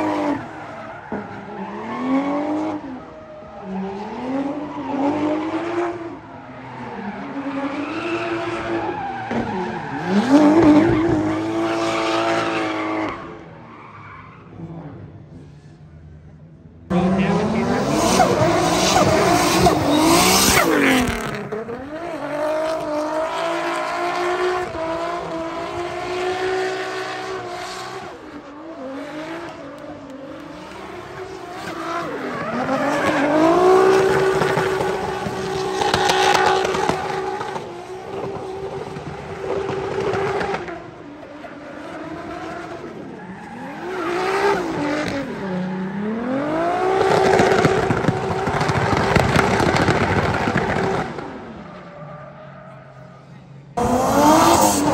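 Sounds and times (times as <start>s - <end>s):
car engines at high revs: 0.0s - 13.6s, 14.4s - 54.9s.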